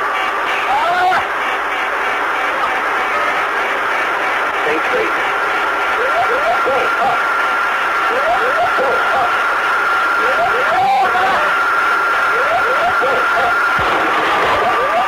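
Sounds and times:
steady high tone: 2.2s - 15.0s
cockpit noise: 4.1s - 15.0s
whoop pull up warning alarm: 5.9s - 7.4s, 8.0s - 15.0s.

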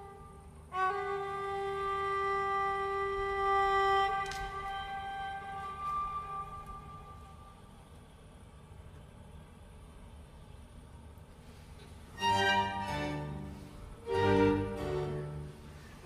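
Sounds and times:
bowed lyra note: 0.0s - 7.6s, 12.2s - 16.0s.

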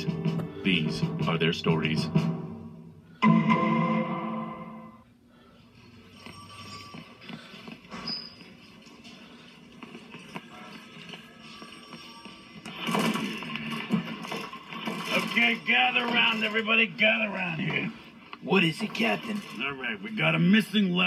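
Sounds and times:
tv music through speaker: 0.0s - 21.0s.

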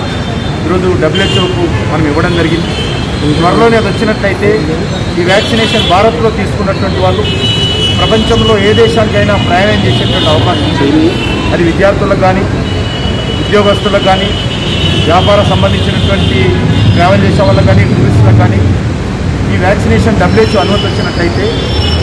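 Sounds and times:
man speaking into microphones: 0.0s - 12.7s, 13.3s - 21.7s.

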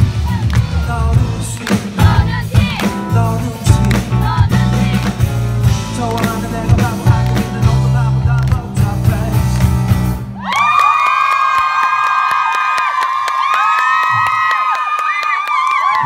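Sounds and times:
audience cheering and screaming: 0.0s - 1.2s, 10.3s - 16.0s
live band playing: 0.0s - 10.4s.

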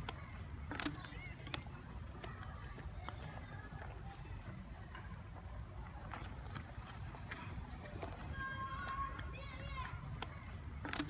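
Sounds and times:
footsteps on gravel: 0.6s - 11.0s.

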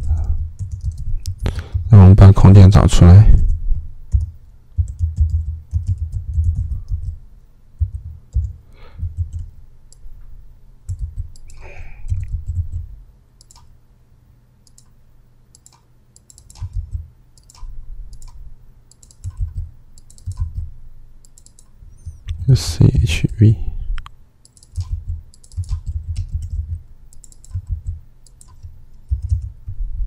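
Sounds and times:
keyboard typing: 0.0s - 1.9s, 3.4s - 7.2s, 7.8s - 10.0s, 10.9s - 13.7s, 14.6s - 14.9s, 15.5s - 22.3s, 24.4s - 29.8s.

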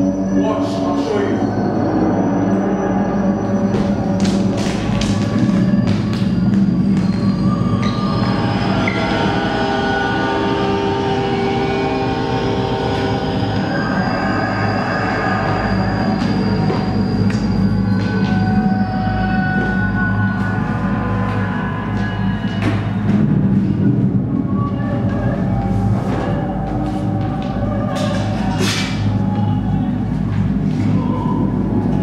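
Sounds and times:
low train rumble: 0.0s - 32.0s
sustained music tones: 0.0s - 32.0s.

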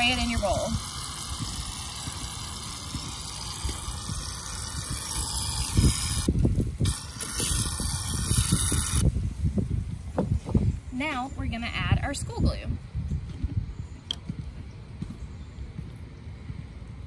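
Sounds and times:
aerosol can spraying hiss: 0.0s - 9.1s.

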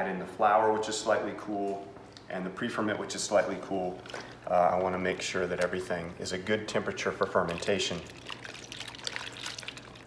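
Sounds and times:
hand squishing dough in water: 3.1s - 10.0s.

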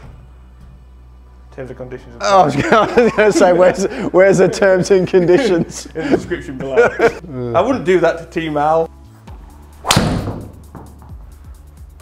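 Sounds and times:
background music: 0.0s - 12.0s
golf driver striking ball: 9.8s - 10.6s.

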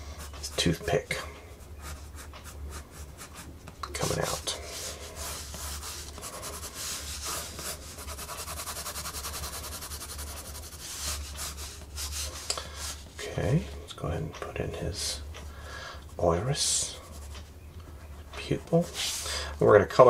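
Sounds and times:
pencil scratching on paper: 1.6s - 13.0s.

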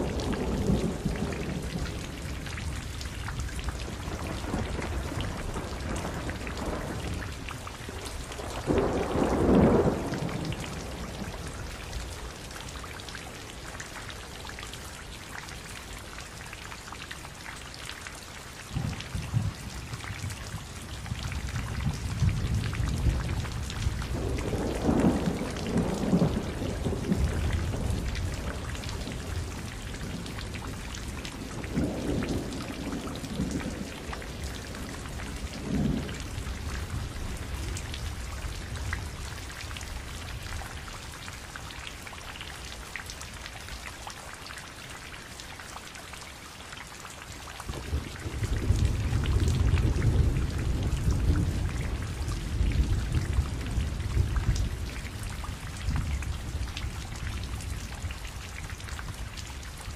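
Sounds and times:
low rolling thunder: 0.0s - 12.4s, 18.7s - 40.7s, 47.7s - 58.2s
steady rain: 0.0s - 59.9s.

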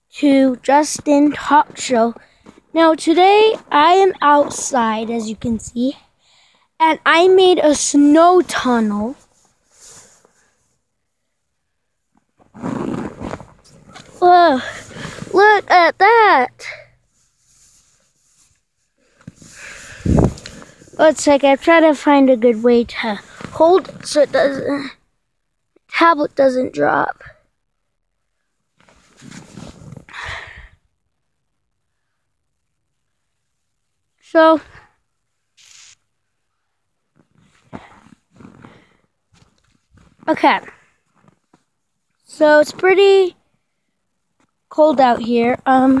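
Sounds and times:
short hiss: 35.6s - 36.1s.

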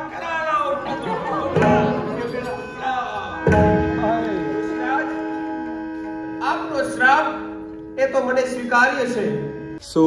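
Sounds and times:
harmonium chord: 0.0s - 10.0s.

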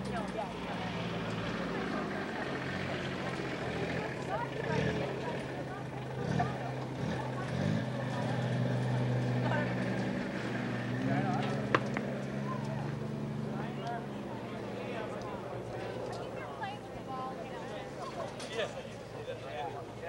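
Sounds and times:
distant voices: 0.0s - 20.0s.

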